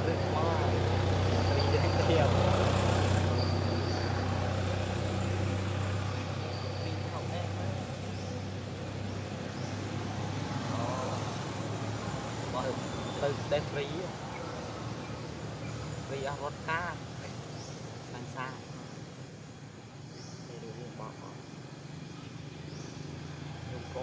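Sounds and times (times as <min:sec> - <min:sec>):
vehicle engine rumble: 0:00.0 - 0:24.0.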